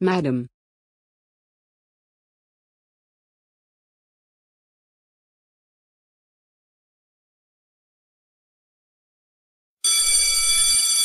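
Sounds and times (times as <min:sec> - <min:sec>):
electric doorbell ringing: 0:09.8 - 0:11.0.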